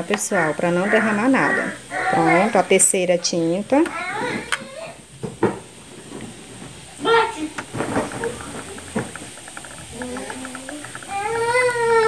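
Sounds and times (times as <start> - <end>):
faint rapid bubbling ticks: 7.6 - 12.0.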